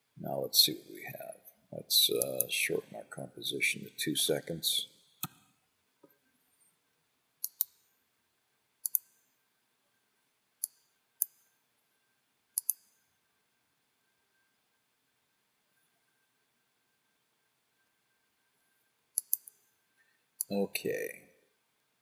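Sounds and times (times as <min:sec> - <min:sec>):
mouse buttons clicking: 0:07.4 - 0:07.8, 0:08.8 - 0:09.2, 0:12.6 - 0:13.0, 0:19.2 - 0:19.7.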